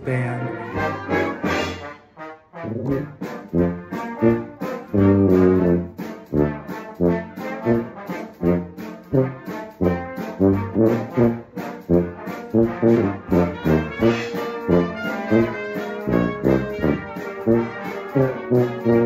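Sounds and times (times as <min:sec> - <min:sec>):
tuba playing short notes: 0:00.0 - 0:19.0.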